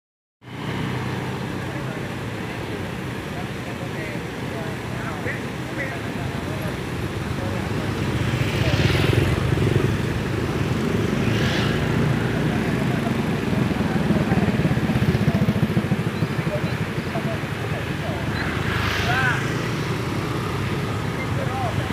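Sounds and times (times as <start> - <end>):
traffic rumble: 0.4 - 21.9
vehicles passing: 0.4 - 21.9
indistinct voices: 11.0 - 21.9.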